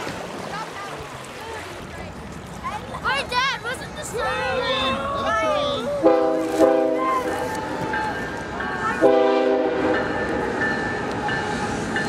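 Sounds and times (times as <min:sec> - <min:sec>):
locomotive air horn: 0:06.0 - 0:07.5, 0:09.0 - 0:10.0.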